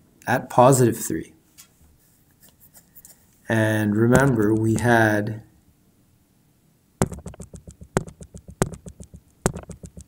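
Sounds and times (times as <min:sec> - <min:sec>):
mouse scroll wheel ticking: 0:07.0 - 0:10.0.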